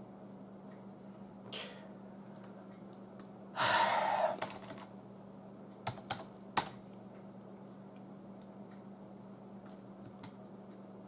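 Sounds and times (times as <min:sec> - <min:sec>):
faint steady hum: 0:00.0 - 0:11.0
loud breath out: 0:03.6 - 0:04.4
computer keyboard keystrokes: 0:04.4 - 0:04.9, 0:05.8 - 0:06.8, 0:09.6 - 0:10.4.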